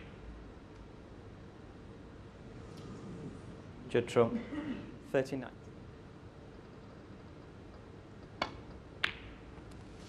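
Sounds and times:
quiet arena hush: 0:00.0 - 0:10.0
cue striking ball click: 0:08.3 - 0:09.4.

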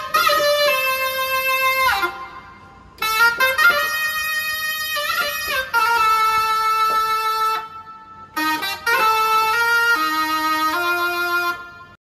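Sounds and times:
keyboard chords held: 0:00.0 - 0:12.0.

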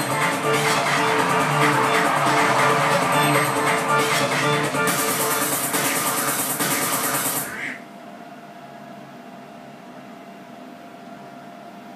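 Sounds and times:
karaoke music: 0:00.0 - 0:07.7.

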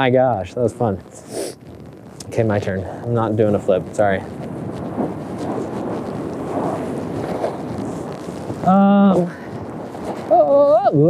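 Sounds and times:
wind rushing over microphone: 0:00.0 - 0:11.0
skis scraping over packed snow: 0:02.2 - 0:11.0.

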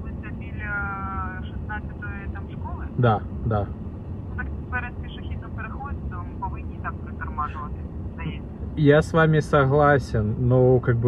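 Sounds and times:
car approaching: 0:00.0 - 0:11.0
street traffic rumble: 0:00.0 - 0:11.0.

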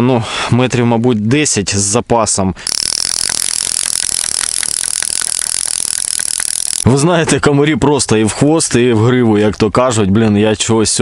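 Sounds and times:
fishing reel whirring: 0:02.6 - 0:06.9.

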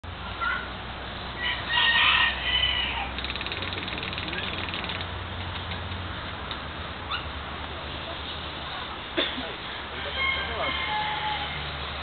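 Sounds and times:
fast rattling bird trill: 0:03.0 - 0:05.2.

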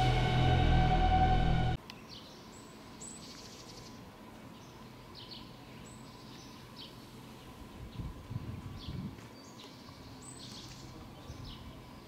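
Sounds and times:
loud title music: 0:00.0 - 0:01.8
quiet outdoor ambience: 0:00.0 - 0:12.0.

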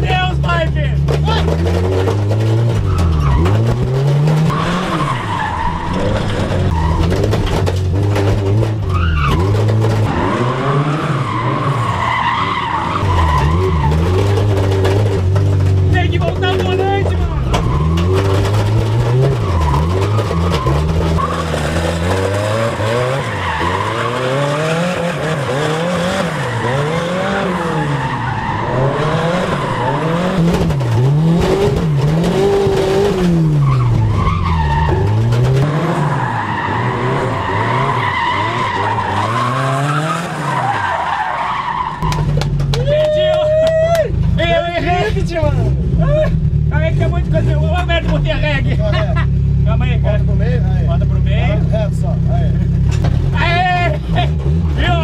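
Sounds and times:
car engine revving: 0:00.0 - 0:42.8, 0:44.2 - 0:55.0
tyres skidding and squealing: 0:00.0 - 0:55.0.

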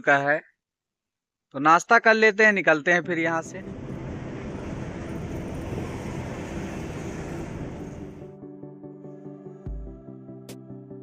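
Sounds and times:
truck engine and road noise: 0:02.7 - 0:08.3.

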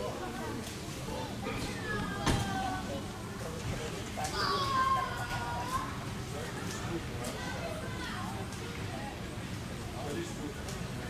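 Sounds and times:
children's voices: 0:00.0 - 0:03.5, 0:04.1 - 0:08.9.

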